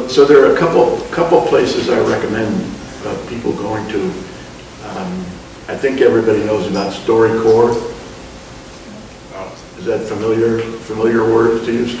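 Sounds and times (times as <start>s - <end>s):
man talking: 0.0s - 8.0s, 9.3s - 12.0s
background hiss: 0.0s - 12.0s.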